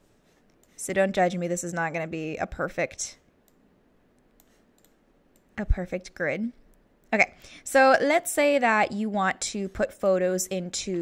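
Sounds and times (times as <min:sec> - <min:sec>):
computer mouse clicks: 0:00.5 - 0:00.8, 0:03.4 - 0:05.6.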